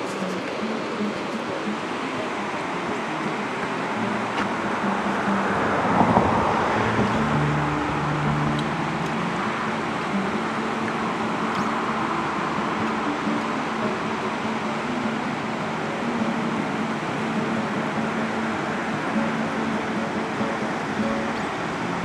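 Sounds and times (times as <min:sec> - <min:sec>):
river rapids rushing: 0:00.0 - 0:22.0
road traffic: 0:00.0 - 0:22.0
vehicle passing: 0:01.5 - 0:15.4.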